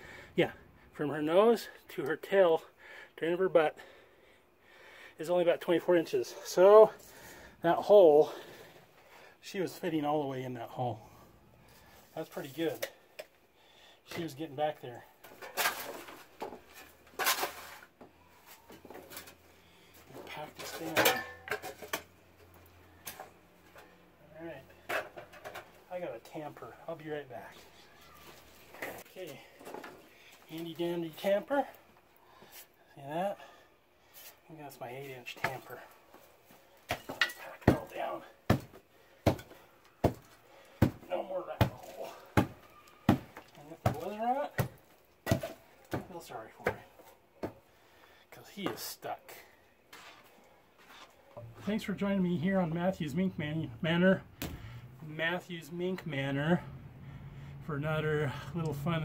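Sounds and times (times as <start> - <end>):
shovel scraping and tossing dirt: 15.3 - 18.0, 49.9 - 51.2.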